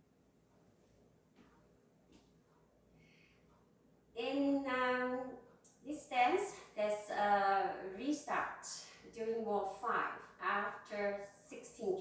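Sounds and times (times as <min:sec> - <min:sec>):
woman speaking: 0:04.2 - 0:12.0.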